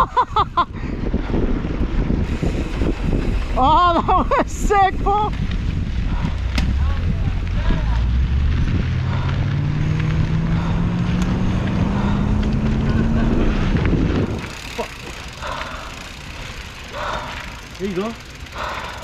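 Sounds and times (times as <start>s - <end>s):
wind rumble on microphone: 0.0s - 17.6s
bike tyre noise: 0.0s - 19.0s
hum rising in pitch: 6.4s - 14.6s.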